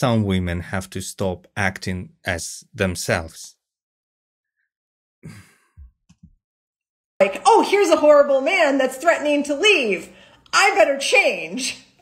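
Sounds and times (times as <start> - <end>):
person sighing: 5.2 - 5.8.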